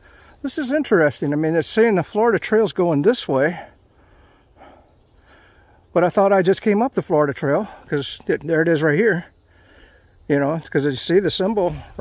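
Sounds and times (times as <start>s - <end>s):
man talking: 0.4s - 3.8s, 5.9s - 9.3s, 10.3s - 12.0s.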